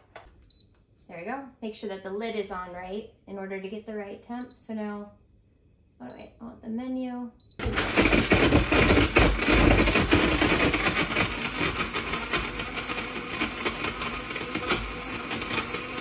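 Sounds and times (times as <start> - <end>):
blender motor whirring: 7.6 - 16.0.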